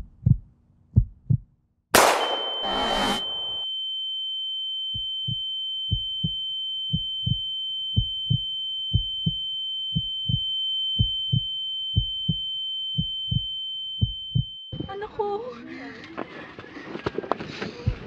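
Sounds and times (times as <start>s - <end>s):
heartbeat thumps: 0.0s - 1.6s, 5.0s - 15.0s, 17.8s - 18.0s
steady high-pitched tone: 2.0s - 15.1s.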